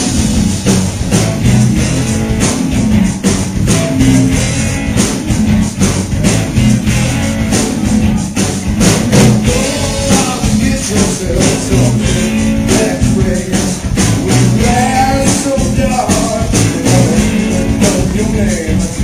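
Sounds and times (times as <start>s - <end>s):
drum kit beat: 0.0s - 19.0s
electric guitar: 0.0s - 19.0s.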